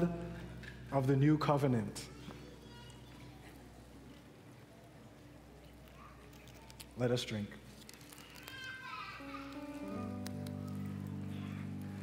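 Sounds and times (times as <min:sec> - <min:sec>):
soft instrumental band music: 0:09.3 - 0:12.0.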